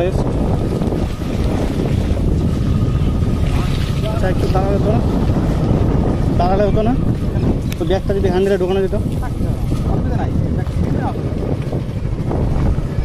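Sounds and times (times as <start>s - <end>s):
motorcycle engine: 0.0s - 13.0s
road noise: 0.0s - 13.0s
wind rumbling on microphone: 0.0s - 13.0s.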